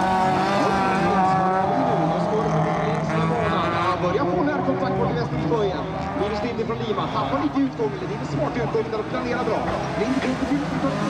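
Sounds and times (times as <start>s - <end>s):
race car engines revving: 0.0s - 11.0s.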